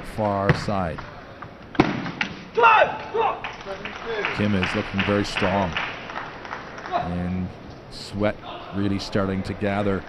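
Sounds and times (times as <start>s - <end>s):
player shouting: 2.6s - 3.4s.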